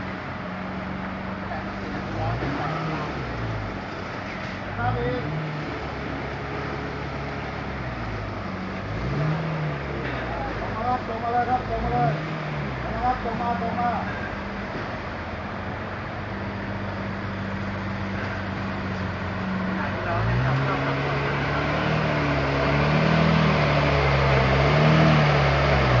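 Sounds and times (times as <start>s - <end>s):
sports car engine idling and revving: 0.0s - 26.0s.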